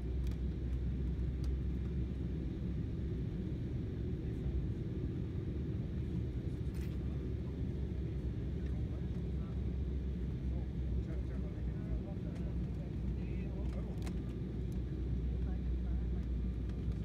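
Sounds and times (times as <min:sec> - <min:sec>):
airliner cabin rumble: 0:00.0 - 0:17.0.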